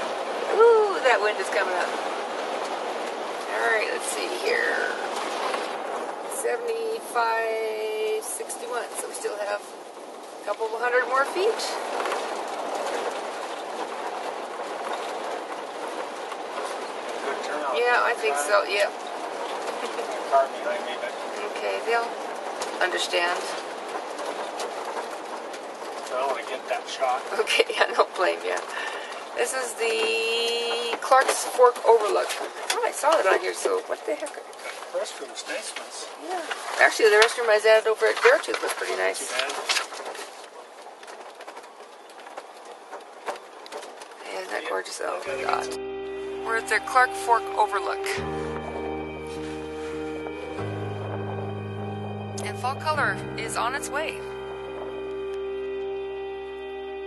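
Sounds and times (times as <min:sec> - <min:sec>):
road noise inside vehicle cab: 0:00.0 - 0:57.0.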